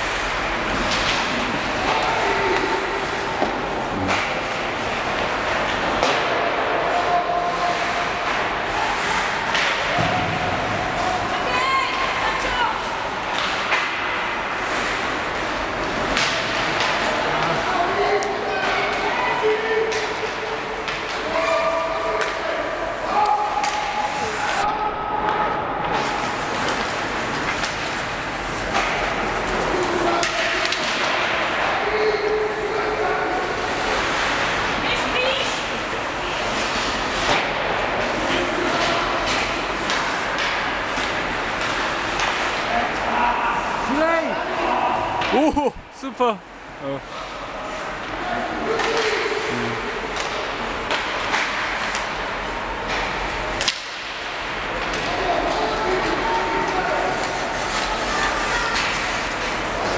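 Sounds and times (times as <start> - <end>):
hockey sticks and puck clacking: 0.1 - 43.9, 47.9 - 59.9.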